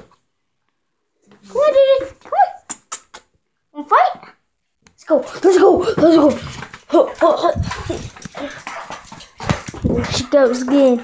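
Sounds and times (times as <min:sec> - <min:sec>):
dog scuffling: 0:05.2 - 0:11.0.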